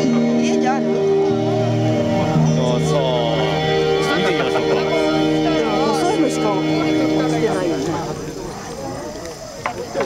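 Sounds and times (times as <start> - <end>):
low murmur of voices: 0.0 - 10.0
music: 0.0 - 10.0.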